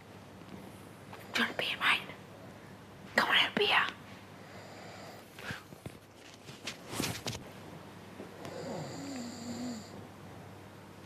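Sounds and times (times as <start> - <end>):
person snoring: 8.4 - 10.0.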